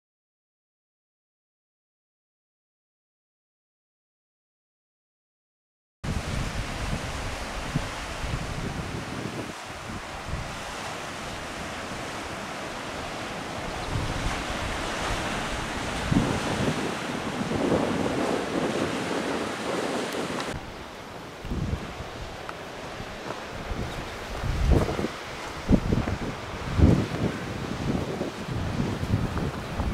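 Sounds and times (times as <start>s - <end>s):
wind gusting on microphone: 6.0s - 29.9s
ocean surf on rocky beach: 6.1s - 29.9s.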